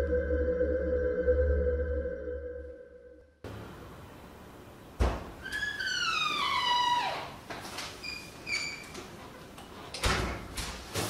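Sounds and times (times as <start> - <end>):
door hinge squeaking: 5.4 - 7.4.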